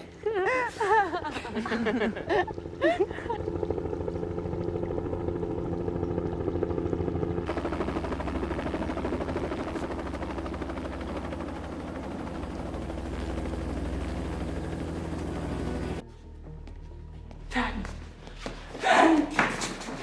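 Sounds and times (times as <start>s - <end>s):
helicopter rotor chopping: 1.1s - 16.0s.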